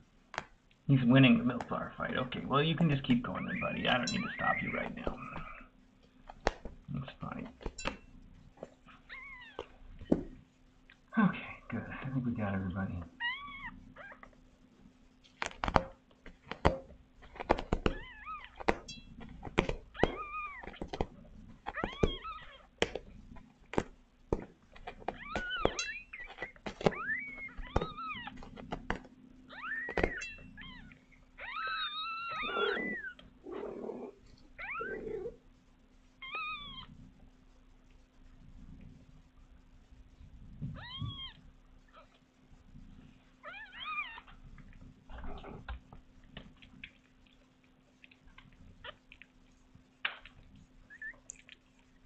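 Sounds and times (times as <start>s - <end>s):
faint steady hum: 0.0s - 52.0s
kittens mewing: 3.3s - 5.7s, 19.5s - 22.9s, 24.9s - 28.8s, 29.4s - 35.4s, 40.7s - 42.2s
sharp clicks and knocks: 15.2s - 22.2s.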